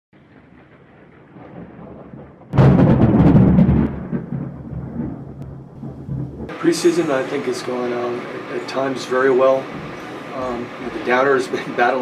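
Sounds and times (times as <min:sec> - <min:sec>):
low rumble: 0:00.2 - 0:11.4
loud booming hit: 0:00.2 - 0:12.0.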